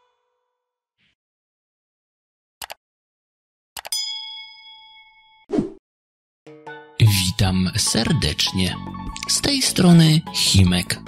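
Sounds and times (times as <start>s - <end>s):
bright bell ding: 3.9s - 5.4s.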